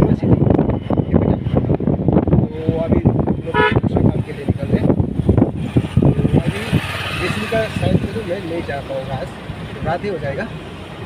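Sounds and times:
people talking in car: 0:00.0 - 0:10.7
car engine and road noise: 0:00.0 - 0:11.0.

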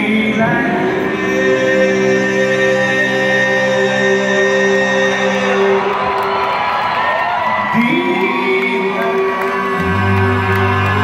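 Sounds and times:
crowd cheering and whooping: 0:05.2 - 0:11.0.

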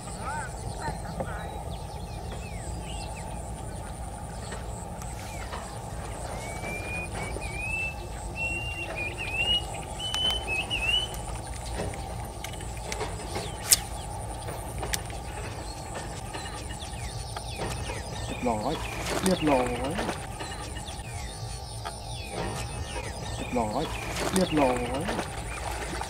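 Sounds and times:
bird chirping: 0:00.0 - 0:26.0
faint high whine: 0:00.0 - 0:26.0
sharp click: 0:11.9 - 0:14.0.

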